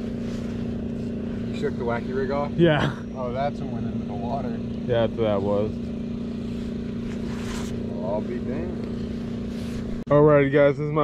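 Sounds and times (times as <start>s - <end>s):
soft rustle: 0.0s - 1.7s, 6.4s - 8.0s
steady motor hum: 0.0s - 11.0s.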